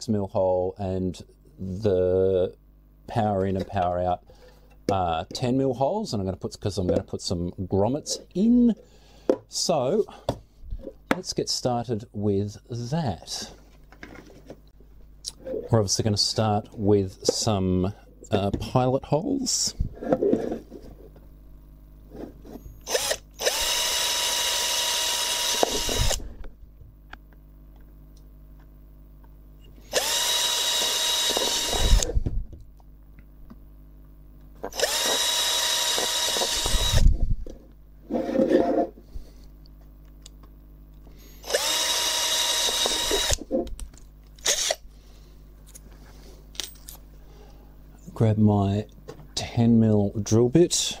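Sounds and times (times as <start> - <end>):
power drill boring plastic: 22.8 - 26.2, 29.8 - 32.2, 34.7 - 37.1, 41.4 - 43.5, 44.4 - 44.8.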